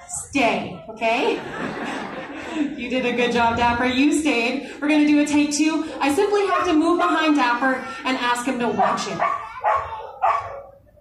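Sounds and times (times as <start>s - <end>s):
dog barking: 8.7s - 10.8s.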